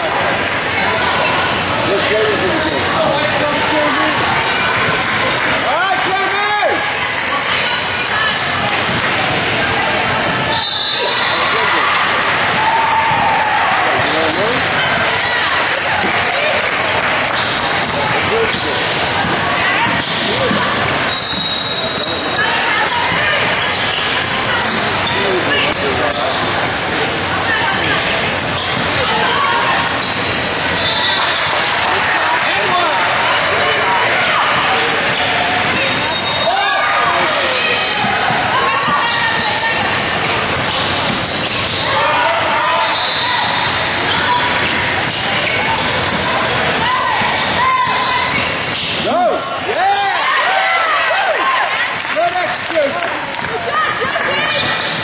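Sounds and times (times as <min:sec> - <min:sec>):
voices calling out: 0:00.0 - 0:55.0
basketball bouncing on court: 0:15.9 - 0:22.4.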